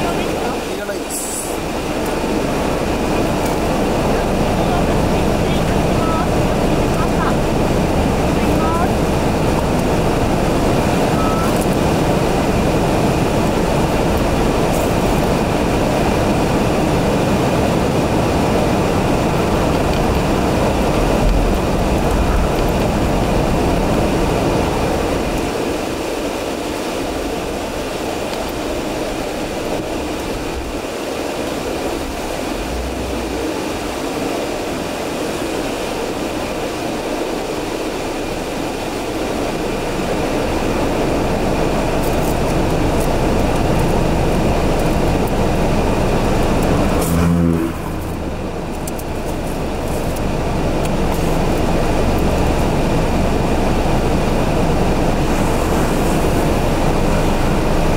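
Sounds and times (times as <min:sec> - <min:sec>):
road and engine noise inside car: 0:00.0 - 0:57.9.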